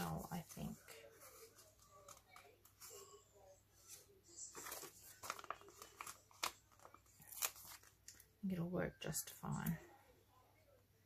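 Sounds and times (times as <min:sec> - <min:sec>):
paper sheets rustling and crinkling: 0:03.8 - 0:08.2.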